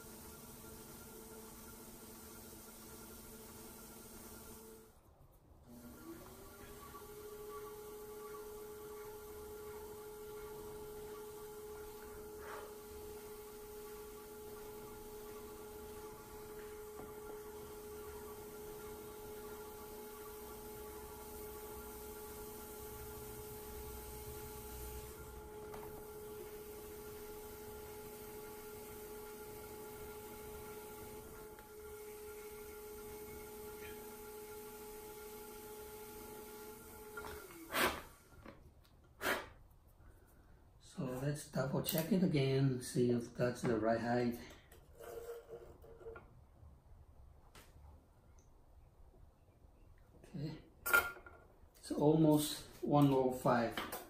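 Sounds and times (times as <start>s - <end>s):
pottery wheel motor whine: 0.0s - 38.6s.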